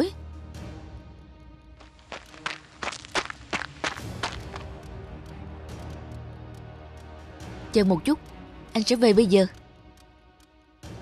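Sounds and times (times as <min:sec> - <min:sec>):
cartoon running footsteps: 0:01.8 - 0:04.8.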